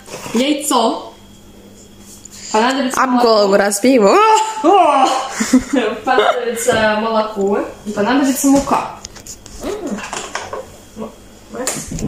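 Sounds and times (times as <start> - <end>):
kitchen clicks and knocks: 10.0 - 10.7.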